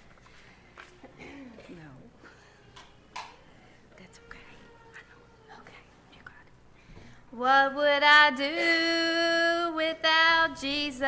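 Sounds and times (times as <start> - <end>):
faint whispering voices: 3.8 - 6.6.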